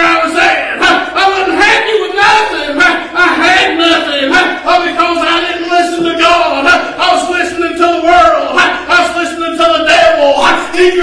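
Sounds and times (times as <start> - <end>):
man preaching in a shout: 0.0 - 11.0.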